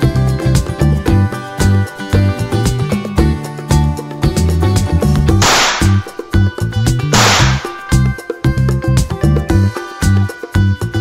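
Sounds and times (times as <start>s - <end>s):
upbeat background music: 0.0s - 11.0s
hissing whip-like sound effect: 5.4s - 6.2s, 7.2s - 8.0s.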